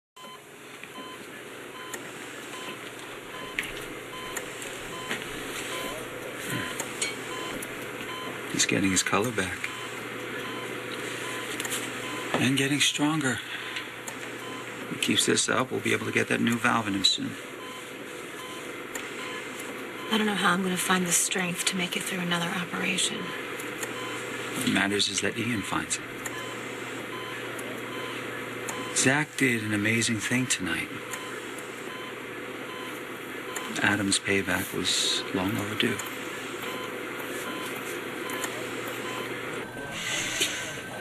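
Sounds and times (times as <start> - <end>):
heart monitor beeping: 0.2 - 15.1, 15.9 - 24.5, 25.2 - 29.1, 30.4 - 41.0.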